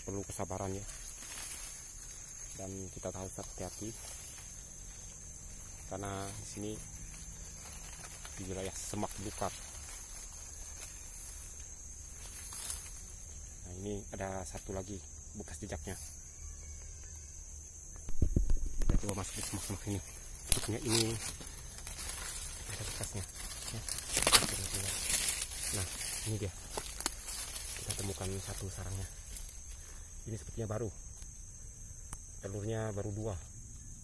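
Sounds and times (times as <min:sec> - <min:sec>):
leaves and undergrowth rustling: 0:00.0 - 0:16.3, 0:18.0 - 0:31.6
insects droning: 0:00.0 - 0:34.0.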